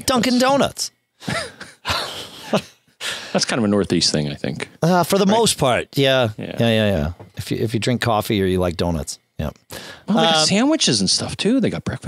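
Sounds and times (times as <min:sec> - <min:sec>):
man laughing: 0:01.2 - 0:02.9
man speaking a word: 0:03.4 - 0:12.0.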